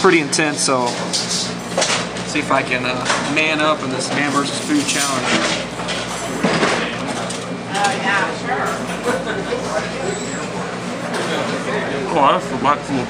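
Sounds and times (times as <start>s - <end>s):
steady low hum: 0.0s - 13.0s
background chatter of voices: 2.2s - 13.0s.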